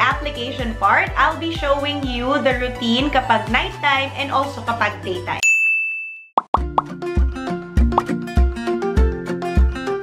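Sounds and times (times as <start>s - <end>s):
background music with steady beat: 0.0s - 5.4s, 6.6s - 10.0s
ringing ding: 5.4s - 6.3s.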